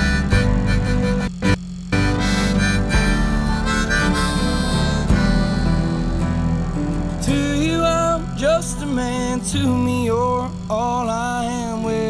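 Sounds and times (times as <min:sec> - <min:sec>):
harmonica sliding notes: 0:00.0 - 0:10.8
acoustic guitar: 0:00.0 - 0:12.0.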